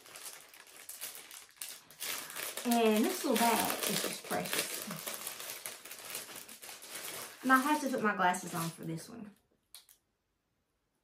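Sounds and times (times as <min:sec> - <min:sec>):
faint rustling of fabric bag: 0:00.0 - 0:08.9.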